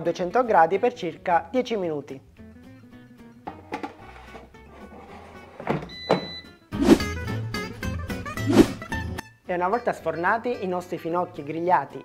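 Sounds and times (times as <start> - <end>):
background music: 0.0 - 12.0
swooshing sweeps: 6.8 - 7.1, 8.4 - 8.8.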